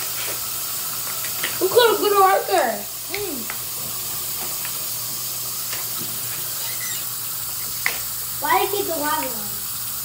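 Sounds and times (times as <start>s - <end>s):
tap water running: 0.0s - 10.0s.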